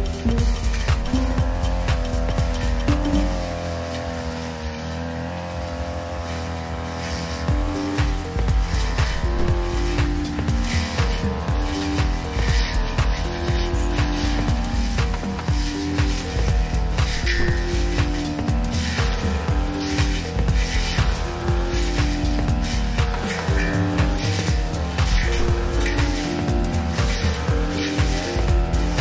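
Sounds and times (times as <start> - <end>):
music with steady beat and bass: 0.0 - 4.6, 7.0 - 29.0
brush cutter engine running: 0.0 - 29.0.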